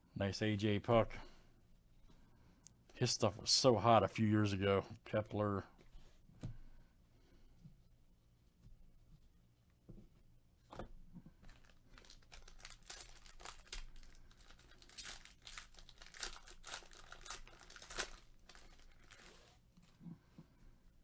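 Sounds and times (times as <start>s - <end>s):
foil wrapper crinkling and tearing: 11.4s - 19.6s.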